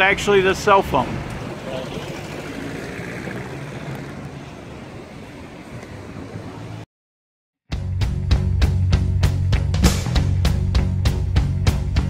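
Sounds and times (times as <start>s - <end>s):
street traffic hiss: 0.0s - 6.8s.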